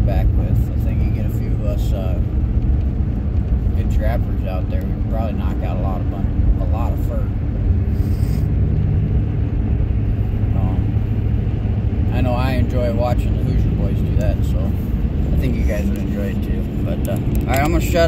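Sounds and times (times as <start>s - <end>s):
man talking: 0.0s - 2.2s, 3.8s - 7.3s, 10.5s - 10.9s, 12.1s - 18.0s
truck road and engine rumble: 0.0s - 18.0s.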